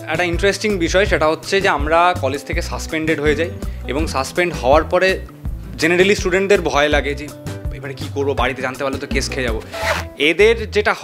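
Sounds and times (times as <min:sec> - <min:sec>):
background music: 0:00.0 - 0:11.0
man talking into microphone: 0:05.8 - 0:11.0.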